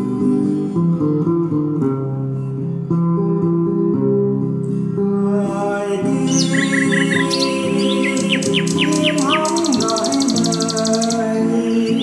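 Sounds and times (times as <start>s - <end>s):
instrumental music: 0.0s - 12.0s
bird chirping and trilling: 6.2s - 12.0s.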